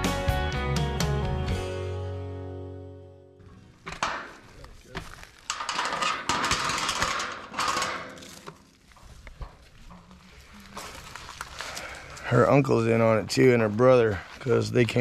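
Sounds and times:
metal chain rattling on gate: 5.5 - 9.6.

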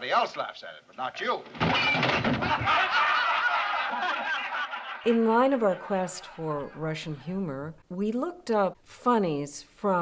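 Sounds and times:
group of people laughing: 2.0 - 6.9.

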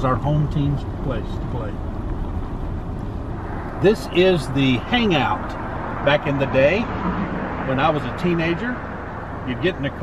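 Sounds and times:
road and engine noise inside car: 0.0 - 10.0.

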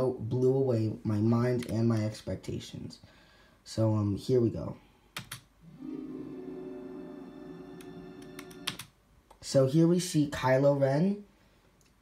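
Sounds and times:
sharp clicks: 5.2 - 5.5.

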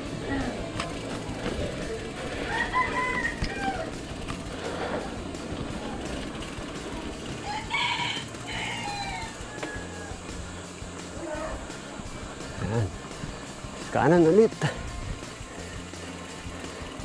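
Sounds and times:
rooster crowing: 2.2 - 4.0, 7.4 - 10.4.

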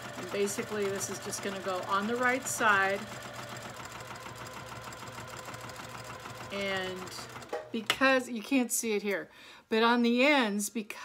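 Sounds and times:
sewing machine stitching: 0.0 - 8.0.

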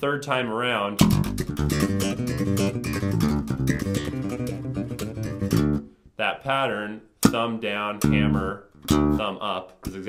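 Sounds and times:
slap bass playing: 1.0 - 6.0, 7.2 - 10.0.

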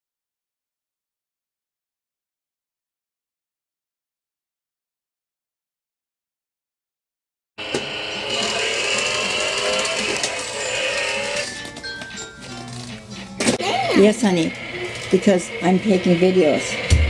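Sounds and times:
sped-up toy car electronic music: 8.0 - 13.2.

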